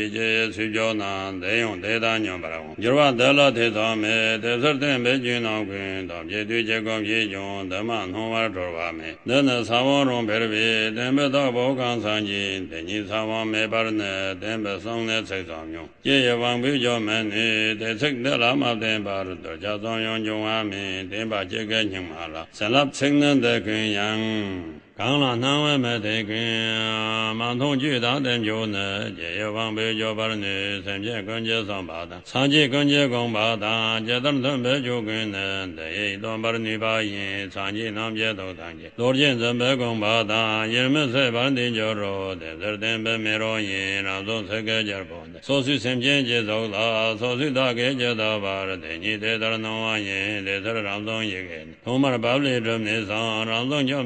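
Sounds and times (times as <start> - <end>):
man chanting: 0.0 - 54.0.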